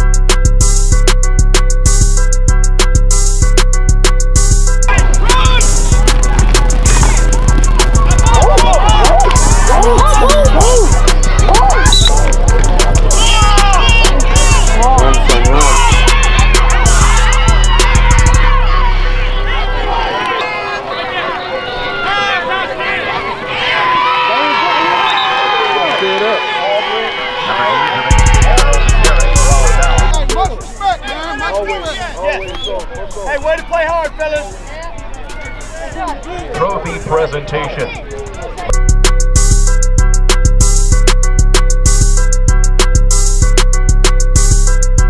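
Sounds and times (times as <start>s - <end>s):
music with heavy bass and beat: 0.0s - 19.1s, 28.1s - 37.3s, 38.6s - 45.0s
crowd shouting and cheering: 0.0s - 45.0s.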